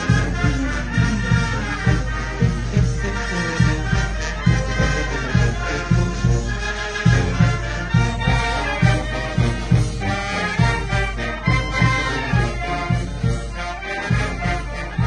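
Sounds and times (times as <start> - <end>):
steady bass beat: 0.0 - 13.5
trumpets and trombones melody: 0.0 - 15.0.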